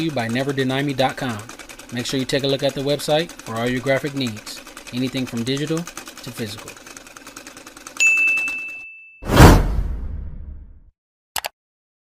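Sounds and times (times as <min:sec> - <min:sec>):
sewing machine stitching: 0:00.0 - 0:08.7
bell-like ding: 0:08.0 - 0:09.3
whoosh-like hit: 0:09.2 - 0:10.8.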